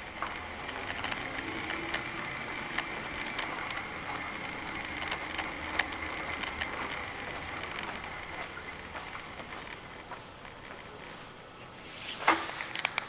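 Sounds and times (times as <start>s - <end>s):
wheelchair motors whining: 0.0s - 10.7s.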